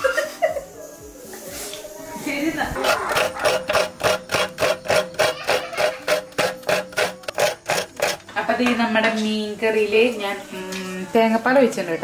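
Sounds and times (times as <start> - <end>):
coconut scraping on serrated blade: 2.7 - 8.3.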